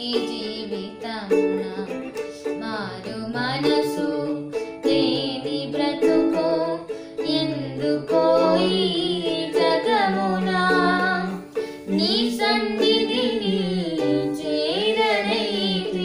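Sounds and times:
girl and man singing: 0.0 - 16.0
strummed ukulele: 0.0 - 16.0.

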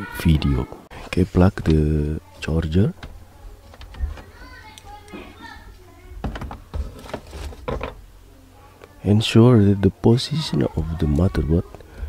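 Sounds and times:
clicks and knocks of handling: 3.0 - 5.3.

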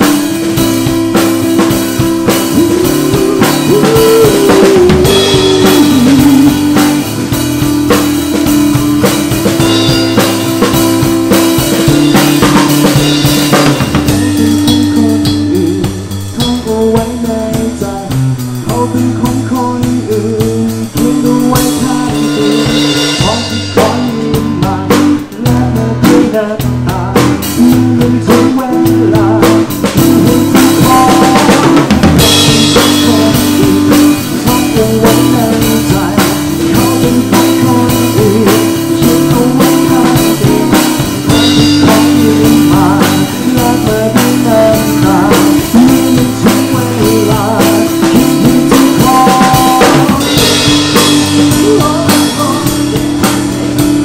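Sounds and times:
acoustic guitar: 0.0 - 54.0
drum kit: 0.0 - 54.0.

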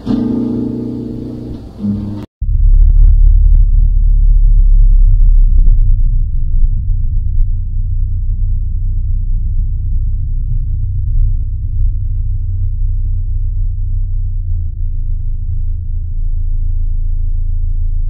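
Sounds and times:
deep bass rumble: 1.0 - 18.0.

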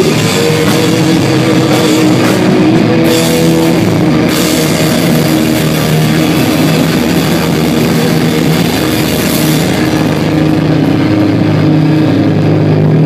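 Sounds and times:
distorted electric guitars droning: 0.0 - 13.0
punk rock band playing: 0.0 - 13.0.

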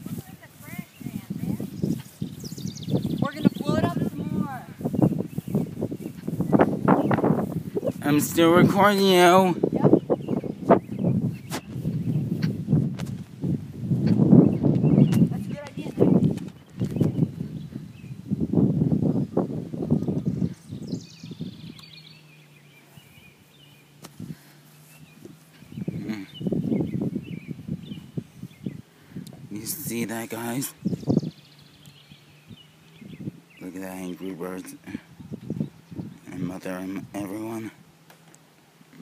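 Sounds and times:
indistinct voices talking: 0.0 - 10.8, 14.0 - 16.4, 25.8 - 26.6.

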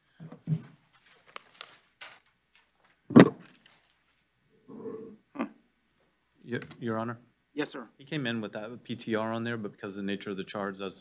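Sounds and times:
papers rustling: 0.4 - 4.3.

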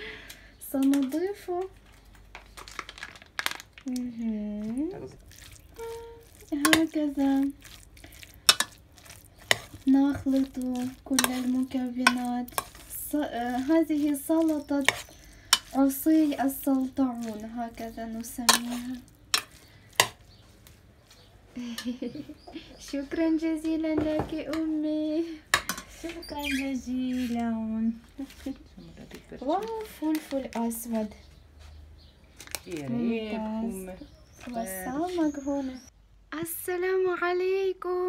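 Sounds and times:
plastic pouch crackling: 1.8 - 4.2.

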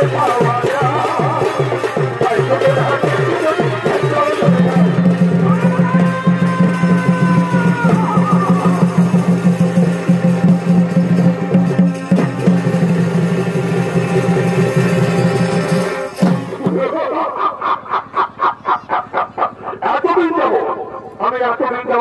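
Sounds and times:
reed pipe melody: 0.0 - 17.8
drums beating: 0.0 - 20.2.

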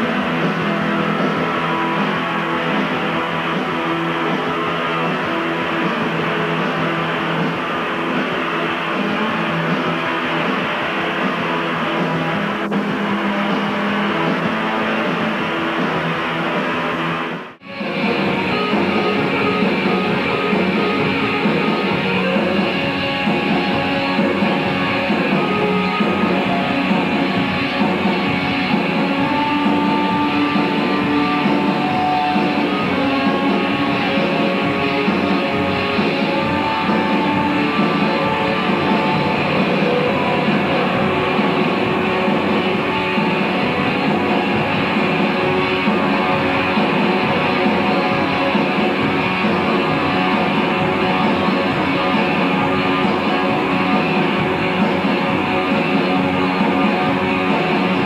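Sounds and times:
live rock band playing: 0.0 - 58.0.

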